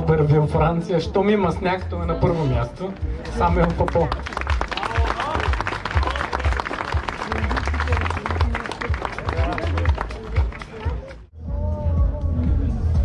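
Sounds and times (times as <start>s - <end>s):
music: 0.0s - 13.0s
voices: 2.4s - 11.3s
crowd applauding: 3.2s - 11.3s.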